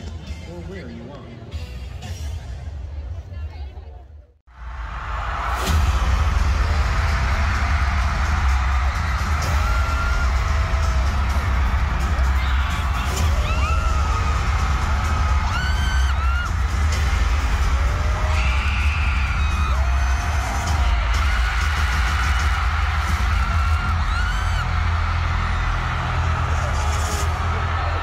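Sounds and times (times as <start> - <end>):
loud music with heavy bass: 4.5 - 28.0
fans screaming: 4.6 - 28.0.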